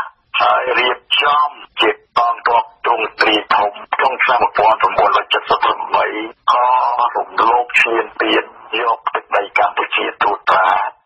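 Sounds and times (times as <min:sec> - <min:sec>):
news reader talking on radio: 0:00.0 - 0:11.0.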